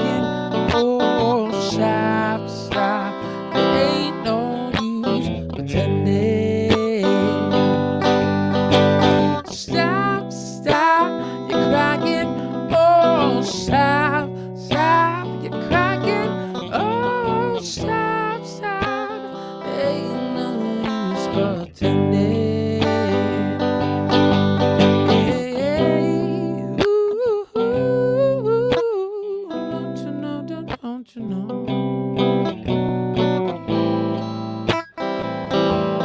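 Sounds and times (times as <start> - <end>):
electric guitar strumming: 0.0 - 28.9, 29.5 - 36.0
man singing: 0.0 - 31.7.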